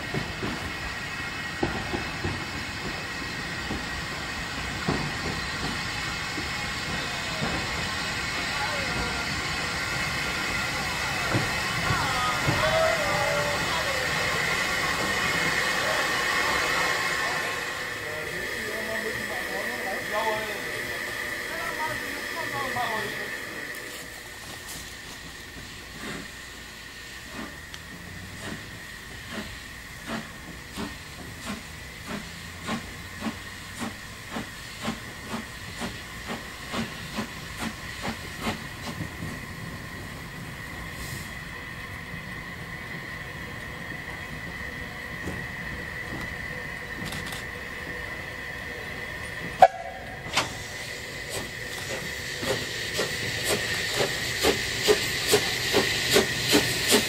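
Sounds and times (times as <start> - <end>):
locomotive exhaust beats: 0.0 - 17.2, 20.8 - 57.0
steam locomotive hissing steam: 0.0 - 57.0.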